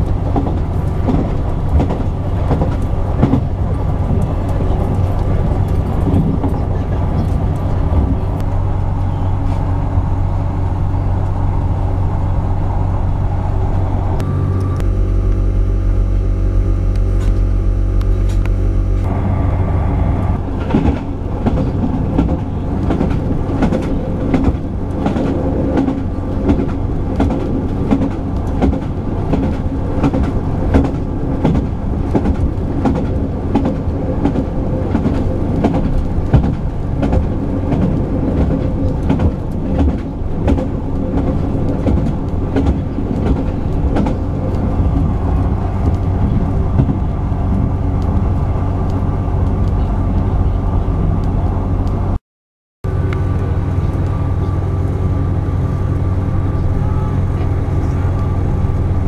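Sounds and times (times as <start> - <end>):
train wheels clicking on rails: 0.0 - 11.4, 20.3 - 50.3
train engine hum: 0.0 - 52.2, 52.8 - 59.0.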